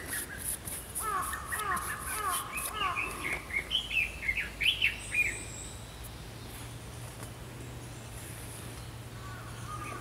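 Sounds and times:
songbird call notes: 0:00.0 - 0:10.0
songbird warbling song: 0:00.0 - 0:10.0.

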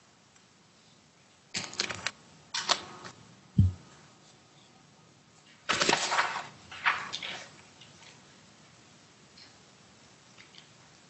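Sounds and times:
dull low thump: 0:03.6 - 0:03.8
microphone handling rustle: 0:03.6 - 0:03.8.

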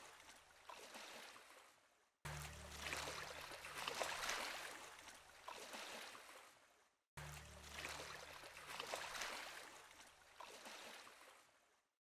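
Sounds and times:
river flowing faintly: 0:00.0 - 0:11.9.

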